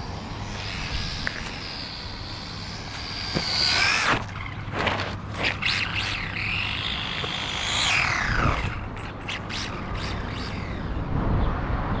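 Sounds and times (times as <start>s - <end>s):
electric motor whining: 0.0s - 11.1s.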